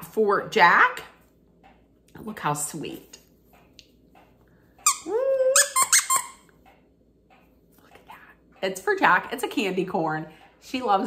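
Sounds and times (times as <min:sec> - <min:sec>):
dog toy squeaking: 0:04.8 - 0:06.5.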